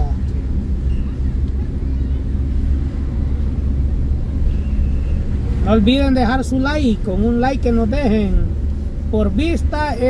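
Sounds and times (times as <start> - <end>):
car cabin engine and tyre rumble: 0.0 - 10.0.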